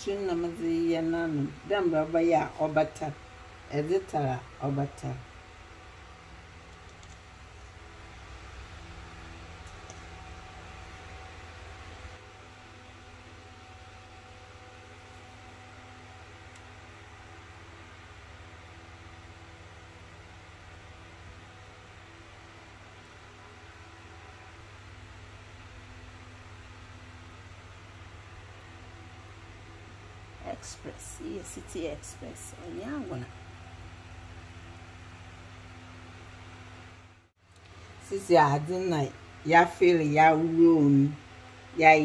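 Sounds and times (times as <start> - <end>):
low mechanical hum with hiss: 0.0 - 42.0.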